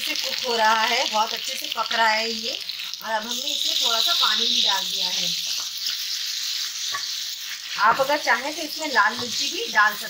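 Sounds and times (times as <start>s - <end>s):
potatoes sizzling in a pan: 0.0s - 10.0s.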